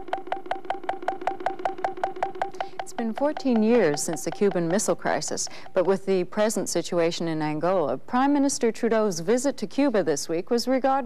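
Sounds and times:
synthesizer pulse: 0:00.0 - 0:05.8
steady held synth tone: 0:00.0 - 0:06.2.

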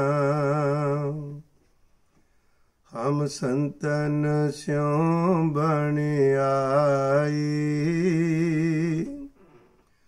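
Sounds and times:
man chanting a hymn: 0:02.9 - 0:09.3.

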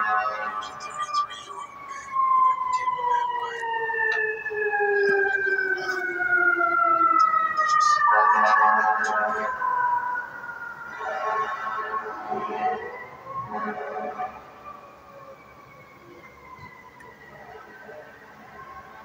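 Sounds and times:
multi-tone siren falling in pitch: 0:00.0 - 0:19.0.

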